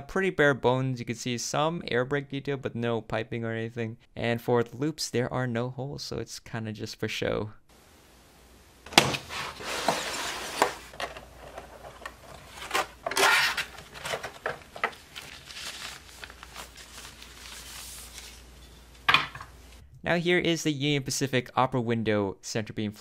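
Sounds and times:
cardboard and plastic crinkling: 0:08.9 - 0:18.6.

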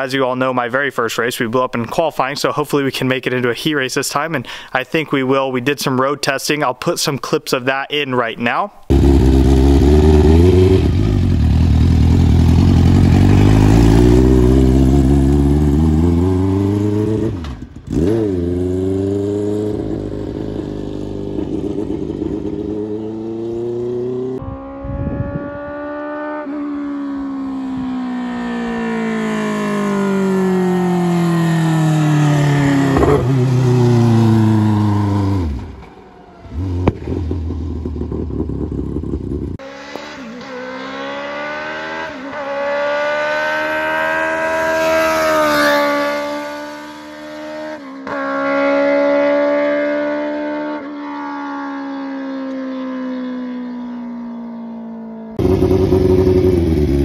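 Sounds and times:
race car engine revving: 0:08.9 - 0:27.5, 0:28.2 - 0:51.3, 0:55.4 - 0:57.0
car accelerating through gears: 0:08.9 - 0:38.7, 0:39.6 - 0:57.0.

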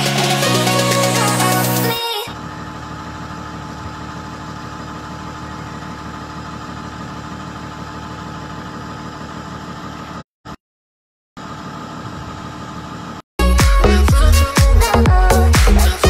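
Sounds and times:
engine idling: 0:00.0 - 0:10.2.

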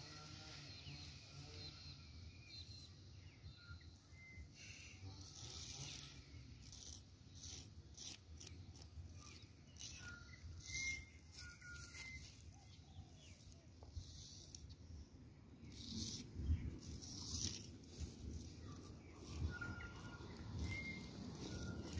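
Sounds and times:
high bird chirps: 0:09.0 - 0:14.7, 0:15.7 - 0:21.9.

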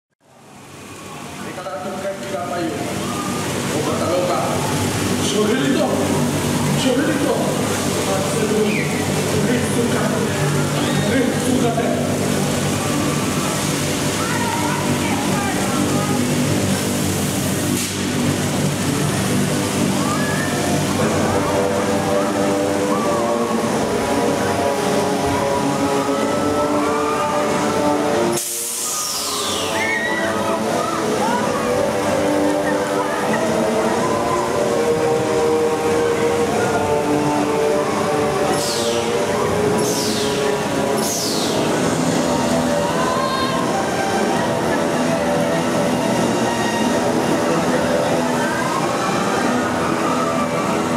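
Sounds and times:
water splashing from fountains: 0:00.2 - 0:50.9
voices: 0:01.1 - 0:17.0, 0:28.9 - 0:50.9
fairground ride music: 0:02.8 - 0:50.9.

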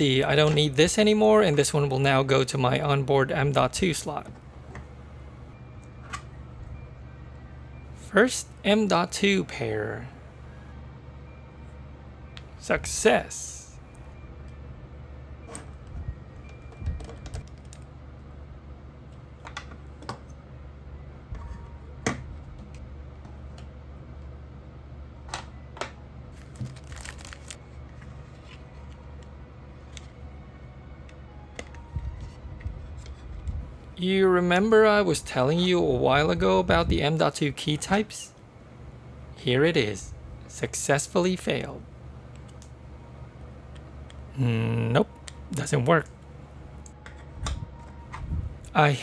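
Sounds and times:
low background hum: 0:00.0 - 0:49.0.

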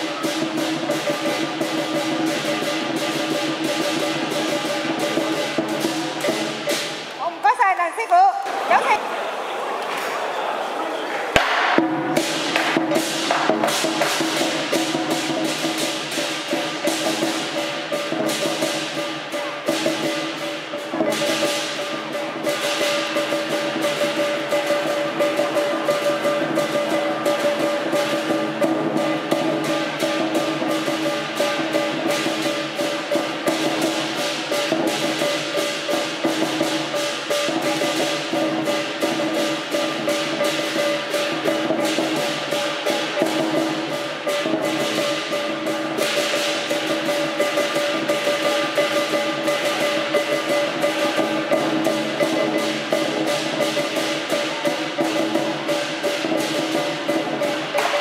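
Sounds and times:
fast drum strokes: 0:00.0 - 0:08.0, 0:11.3 - 0:58.0.

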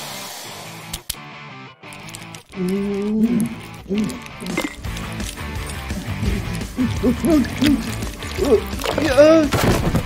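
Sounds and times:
background music: 0:00.3 - 0:10.0
wordless vocal grunts: 0:02.6 - 0:04.5, 0:05.9 - 0:09.5.

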